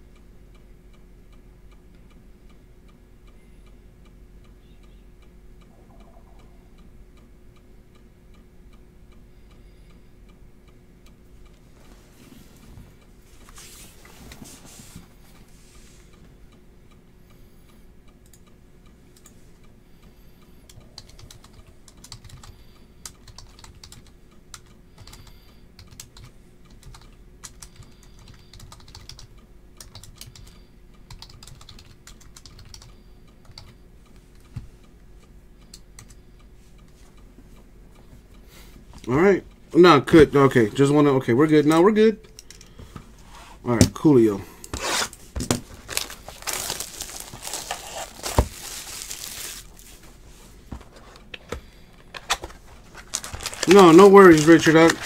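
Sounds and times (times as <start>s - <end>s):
low steady hum: 0.0s - 55.0s
short rustling: 44.8s - 51.0s.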